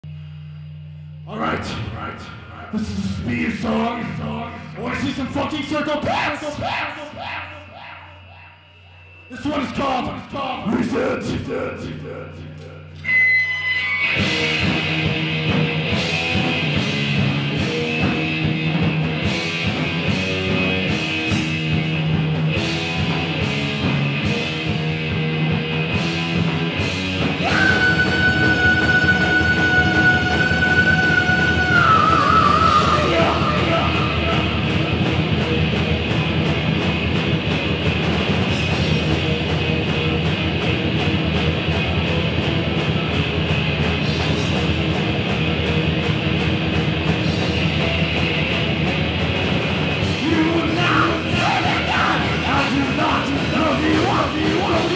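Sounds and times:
thrash metal band playing: 2.7s - 54.9s.

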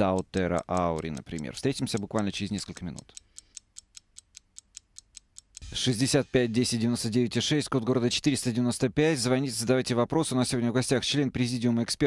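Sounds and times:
fast sharp ticking: 0.0s - 7.6s.

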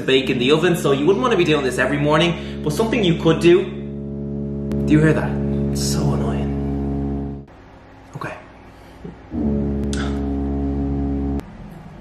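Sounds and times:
loud droning horn-like tone: 1.2s - 7.5s, 9.3s - 11.4s.

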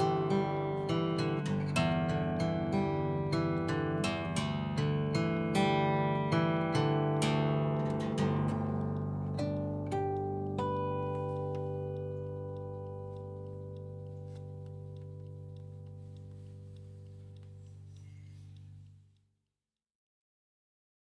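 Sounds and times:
harp guitar fingerstyle: 0.0s - 19.0s.

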